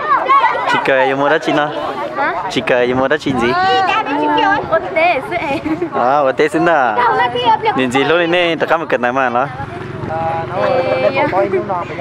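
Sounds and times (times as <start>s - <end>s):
girl speaking: 3.5s - 5.6s, 7.0s - 7.8s.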